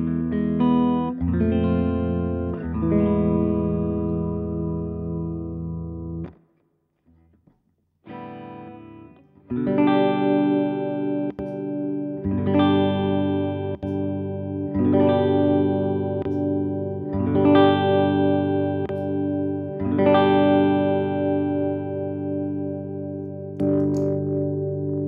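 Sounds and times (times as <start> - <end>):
electric guitar chords strummed: 0.0 - 6.4, 8.1 - 25.0.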